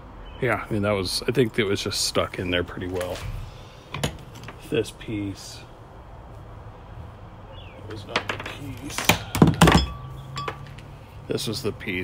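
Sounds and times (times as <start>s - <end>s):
metal parts clunking: 3.9s - 4.6s, 8.1s - 11.0s.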